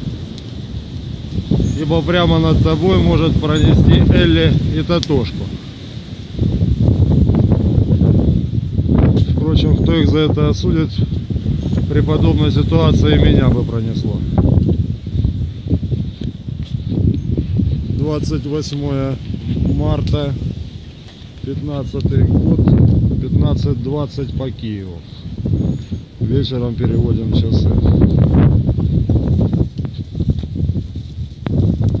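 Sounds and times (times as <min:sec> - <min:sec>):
wind buffeting microphone: 0:00.0 - 0:32.0.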